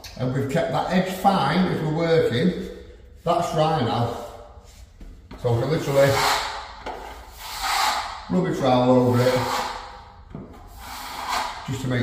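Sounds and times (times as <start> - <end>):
trowel scraping joint compound: 10.6 - 11.8.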